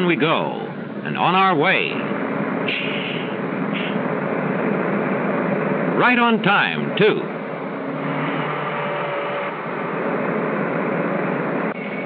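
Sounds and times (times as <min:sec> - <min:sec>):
bus engine and road noise: 0:00.0 - 0:12.0.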